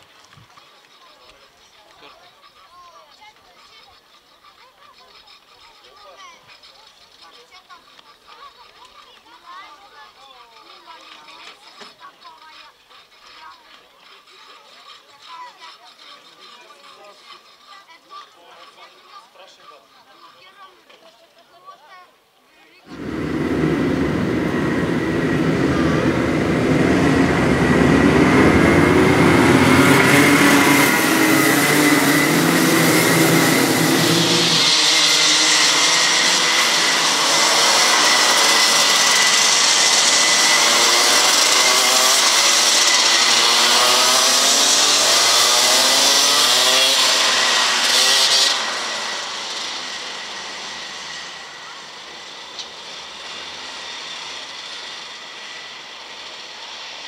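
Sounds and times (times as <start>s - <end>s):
racing kart engines: 0.0s - 57.0s.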